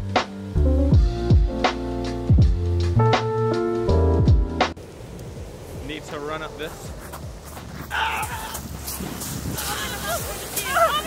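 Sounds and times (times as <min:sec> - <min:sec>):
wind on microphone: 0:04.8 - 0:11.0
people calling out excitedly: 0:07.8 - 0:08.8, 0:09.5 - 0:11.0
people laughing: 0:09.5 - 0:11.0.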